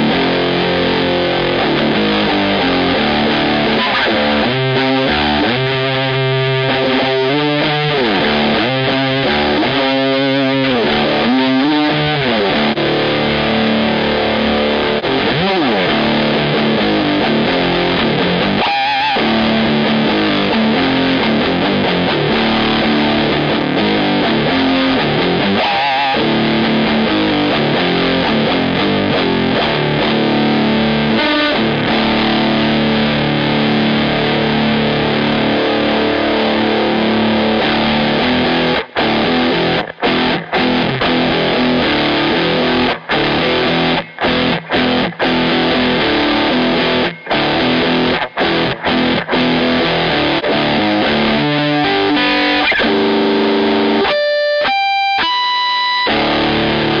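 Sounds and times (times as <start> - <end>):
distorted electric guitar chords: 0.0 - 57.0.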